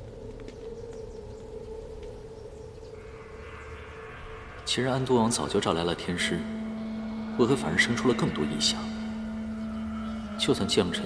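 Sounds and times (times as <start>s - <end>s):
steady low hum: 0.0s - 11.0s
bird chirps: 0.5s - 11.0s
held low note: 2.9s - 11.0s.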